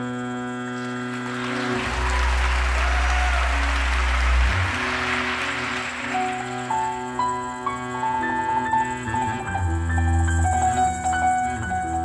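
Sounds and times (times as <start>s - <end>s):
held piano chords: 0.0s - 12.0s
noisy wash with deep low note: 1.2s - 11.9s.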